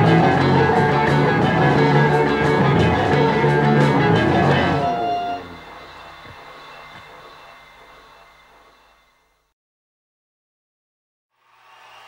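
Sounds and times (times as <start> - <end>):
rock band chord ringing: 0.0 - 6.4.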